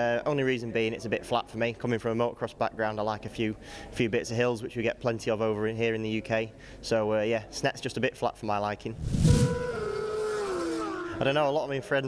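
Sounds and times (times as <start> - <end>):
whoosh: 8.9 - 10.3
tone sliding down in pitch: 9.1 - 10.2.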